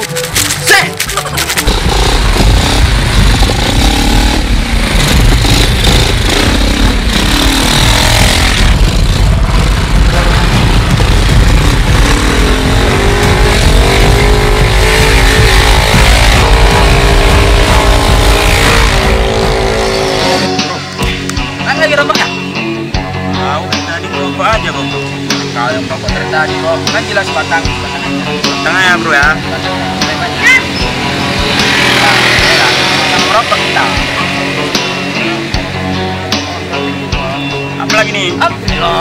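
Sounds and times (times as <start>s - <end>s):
music playing: 0.0s - 39.0s
scooter engine revving: 1.4s - 20.7s, 29.2s - 36.4s.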